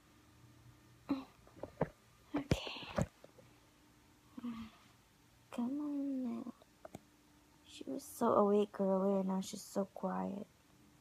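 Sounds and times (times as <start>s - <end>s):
woman whispering: 2.4s - 3.1s.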